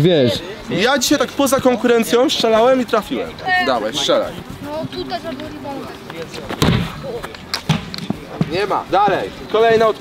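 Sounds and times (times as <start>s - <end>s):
short ball knocks: 6.5s - 8.6s
exercise ball kicked thud: 6.6s - 7.0s.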